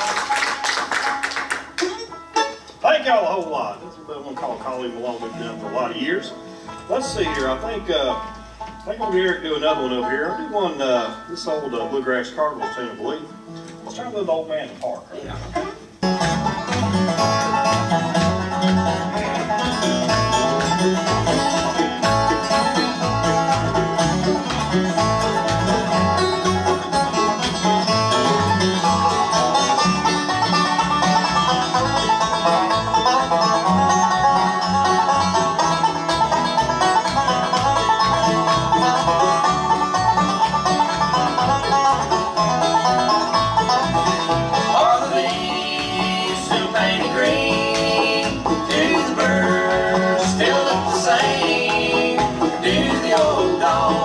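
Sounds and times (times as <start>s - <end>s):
bluegrass band playing: 0.0s - 54.0s
upright bass beat: 16.0s - 54.0s.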